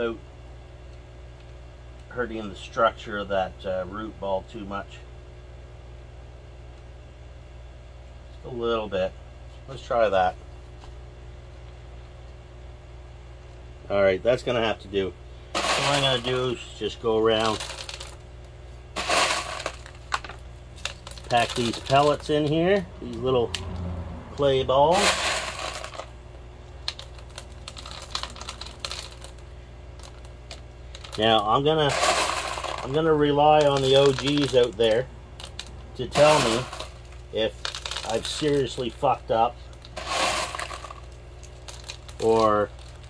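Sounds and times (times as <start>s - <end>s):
clay pebbles rattling and crunching: 15.6s - 18.2s, 19.0s - 23.8s, 24.4s - 26.1s, 26.8s - 39.1s, 39.7s - 43.0s.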